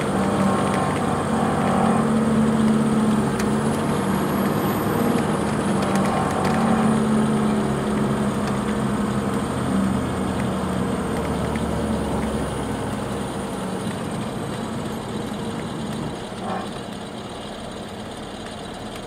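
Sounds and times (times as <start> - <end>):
diesel engine drone: 0.0 - 19.0
tyre and road noise: 0.0 - 19.0.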